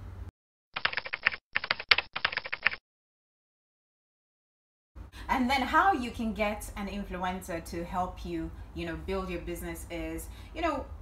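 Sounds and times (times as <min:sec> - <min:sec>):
rapid keyboard key clicks: 0:00.8 - 0:02.8.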